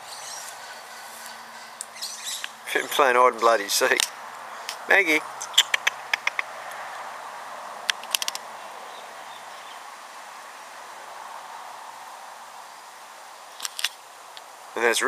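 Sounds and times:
sharp clicks: 0:05.4 - 0:06.8, 0:07.9 - 0:08.4.

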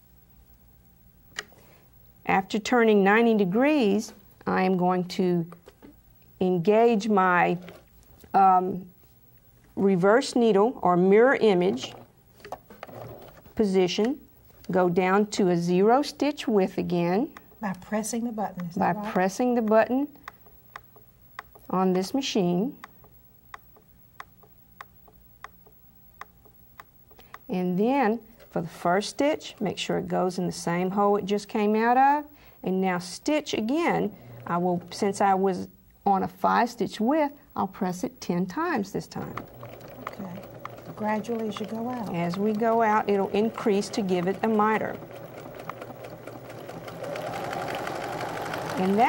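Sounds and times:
sewing machine clicking: 0:11.6 - 0:14.1, 0:39.0 - 0:49.0.

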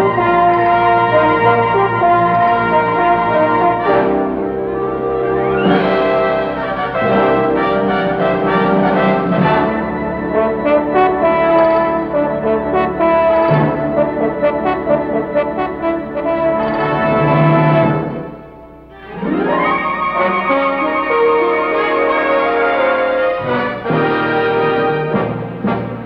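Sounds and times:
orchestral brass fanfare: 0:00.0 - 0:26.0.

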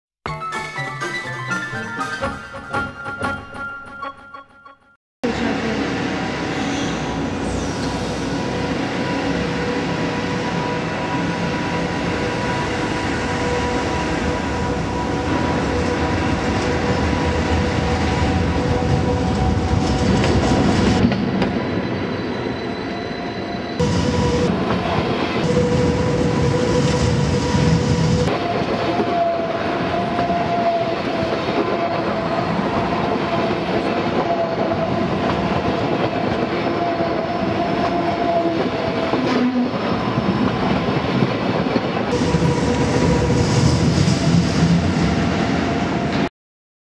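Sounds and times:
wheels rumbling on rails: 0:05.2 - 0:22.1
electric train drive whining: 0:23.8 - 0:31.1.

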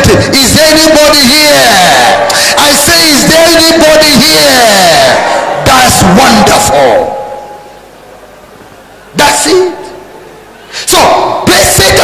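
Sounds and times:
amplified speech echo: 0:00.0 - 0:07.8, 0:09.1 - 0:12.0
room tone hiss: 0:00.0 - 0:12.0.

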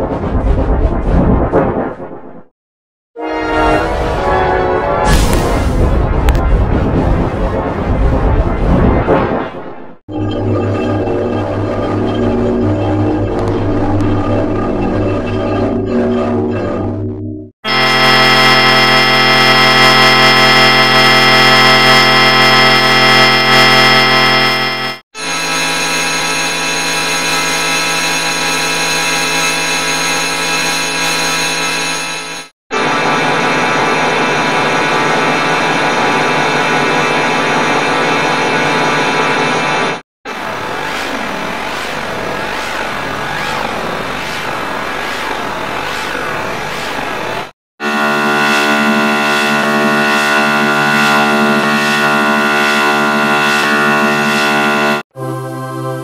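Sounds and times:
distorted startup jingle: 0:17.0 - 0:32.5, 0:47.8 - 0:55.3.

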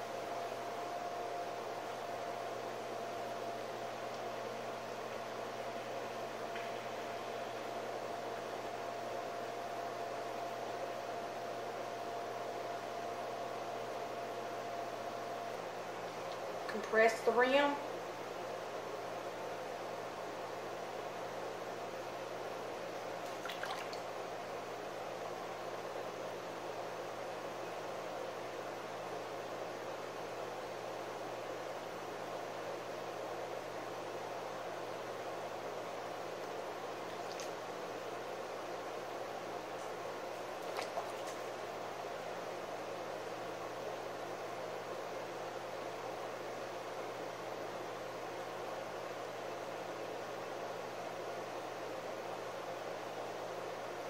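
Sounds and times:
wet clay squishing: 0:40.6 - 0:41.5.

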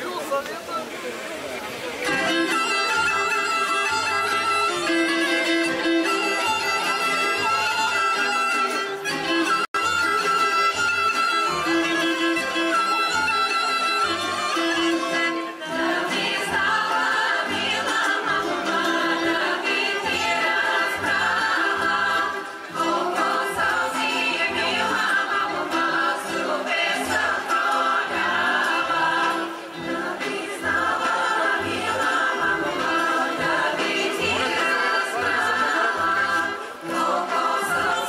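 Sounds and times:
women's choir singing: 0:15.6 - 0:38.0.

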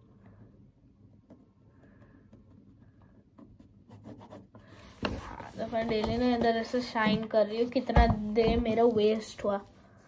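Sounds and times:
pen scratching on paper: 0:03.6 - 0:06.0.

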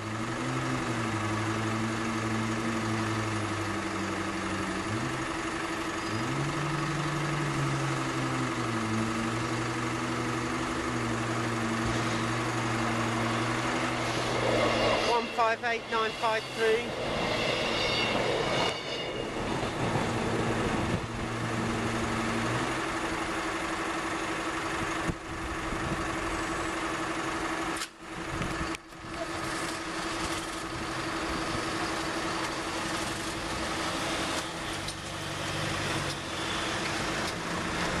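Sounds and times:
road vehicle engines moving off: 0:00.0 - 0:38.0
train diesel engine running: 0:00.0 - 0:38.0
level crossing alarm tone: 0:09.9 - 0:22.2.

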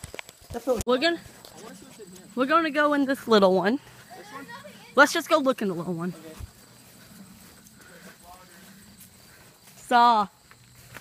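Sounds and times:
footsteps through grass: 0:00.0 - 0:11.0
faint voices: 0:00.9 - 0:10.3.

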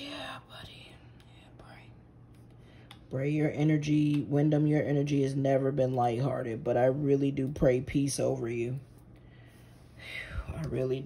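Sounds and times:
woman whispering: 0:00.0 - 0:02.1.

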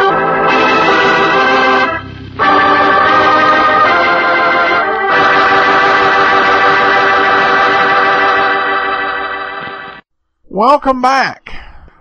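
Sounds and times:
organ sustained chords: 0:00.0 - 0:10.0.

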